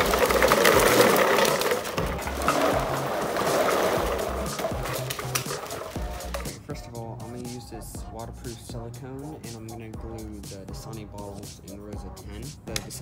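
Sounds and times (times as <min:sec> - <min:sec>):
plastic bottles clattering on concrete: 0:00.0 - 0:06.6
background music with steady beat: 0:00.0 - 0:13.0.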